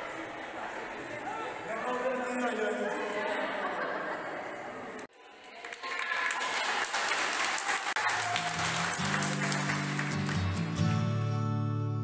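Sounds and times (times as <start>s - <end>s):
people clapping: 5.2s - 11.1s
strummed acoustic guitar: 9.0s - 12.0s.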